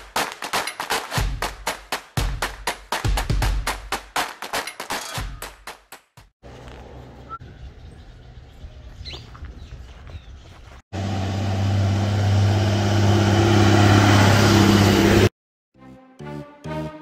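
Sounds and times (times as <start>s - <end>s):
roadside ambience: 6.4s - 15.3s
bird chirps: 7.1s - 10.8s
truck engine drone: 11.0s - 15.3s.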